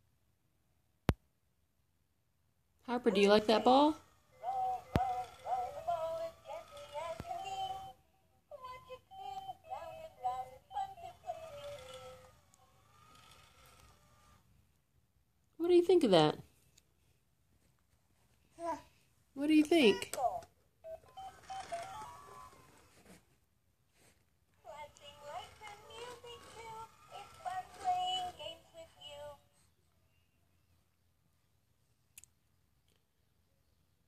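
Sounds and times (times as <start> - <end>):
electronic toy tune: 8.6 - 14.4, 20.9 - 22.7
synthetic voice singing: 24.7 - 29.4.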